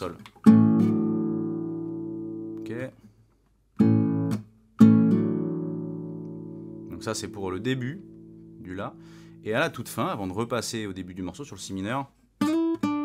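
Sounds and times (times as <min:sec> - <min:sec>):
acoustic guitar chords ringing: 0:00.4 - 0:02.8, 0:03.8 - 0:10.8, 0:12.4 - 0:13.0.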